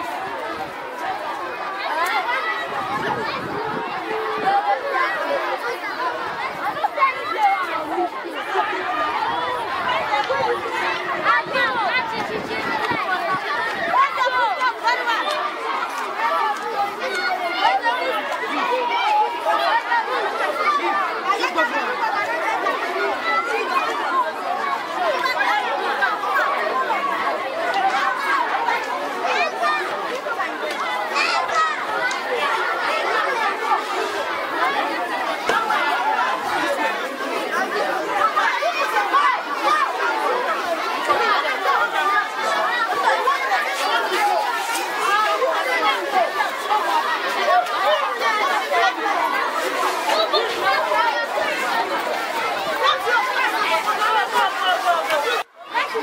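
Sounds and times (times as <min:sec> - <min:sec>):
children chattering and calling out: 0:00.0 - 0:56.0.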